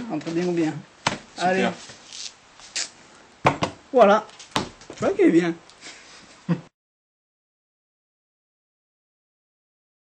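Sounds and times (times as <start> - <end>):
playing cards rustling: 1.1 - 2.9.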